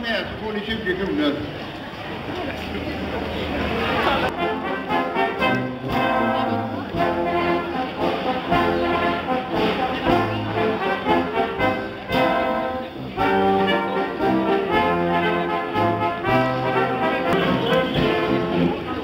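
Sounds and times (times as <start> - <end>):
brass ensemble playing: 4.3 - 19.0.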